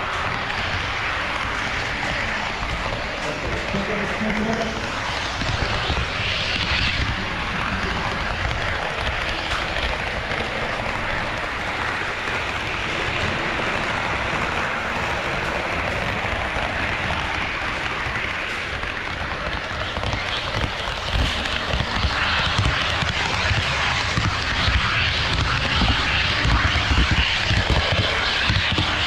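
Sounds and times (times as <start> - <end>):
model train wheels rolling on rails: 0.0 - 29.0.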